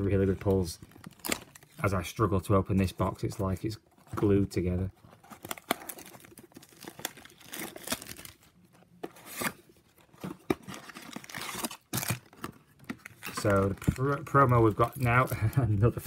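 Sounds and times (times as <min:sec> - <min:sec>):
foil packs rustling: 0:04.2 - 0:08.5, 0:09.2 - 0:16.0
cardboard box tearing: 0:05.2 - 0:08.4, 0:09.0 - 0:13.7.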